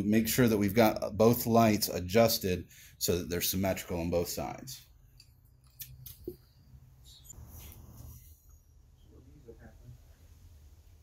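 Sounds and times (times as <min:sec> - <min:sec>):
soft rustle: 0:07.0 - 0:10.4.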